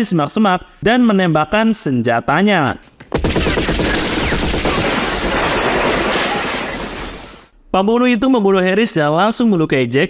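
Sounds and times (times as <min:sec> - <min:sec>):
automatic rifle fire: 0:03.1 - 0:07.5
glass shattering: 0:03.6 - 0:07.5.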